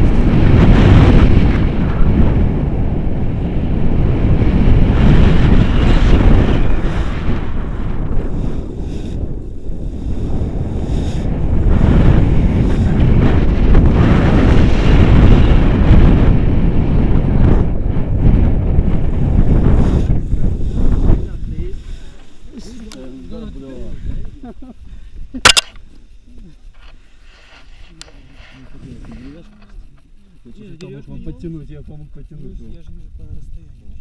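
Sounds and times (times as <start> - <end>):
wind buffeting microphone: 0.0 - 34.0.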